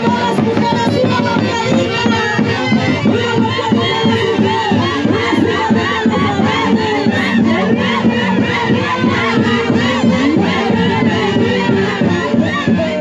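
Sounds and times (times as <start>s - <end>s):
crowd shouting and whooping: 0.0s - 13.0s.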